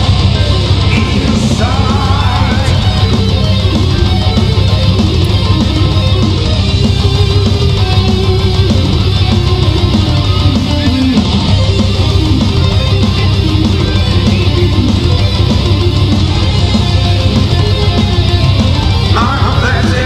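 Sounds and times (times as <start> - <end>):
bass guitar: 0.0 - 20.0
electric guitars: 0.0 - 20.0.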